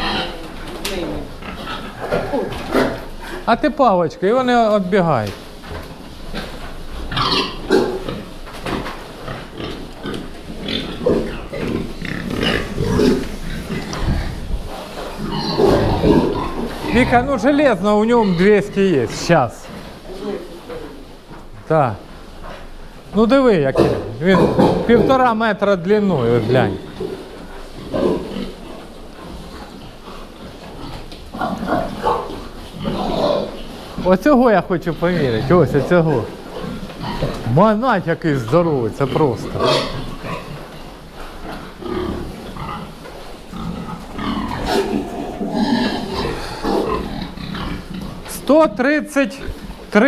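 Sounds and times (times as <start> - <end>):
pigs grunting: 0.0 - 3.6, 6.2 - 21.0, 22.0 - 50.0.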